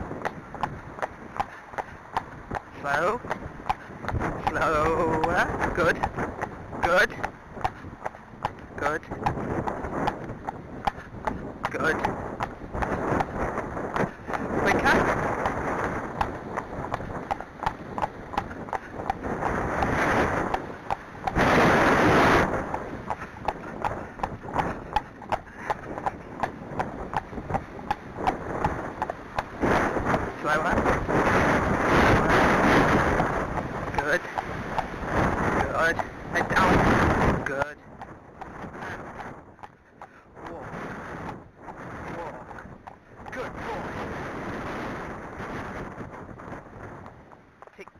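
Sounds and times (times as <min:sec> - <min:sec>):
horse hooves on pavement: 0:00.0 - 0:47.9
wind buffeting microphone: 0:00.0 - 0:47.9.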